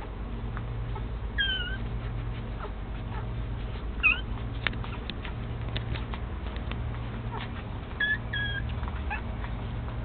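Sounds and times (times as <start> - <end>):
faint clicks of puppies suckling: 0.4 - 10.0
puppy squeaking: 0.9 - 10.0.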